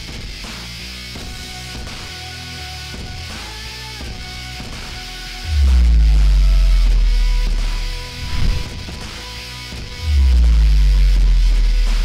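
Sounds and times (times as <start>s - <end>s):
background music: 0.0s - 12.0s
deep bass note: 5.4s - 9.1s, 9.8s - 12.0s.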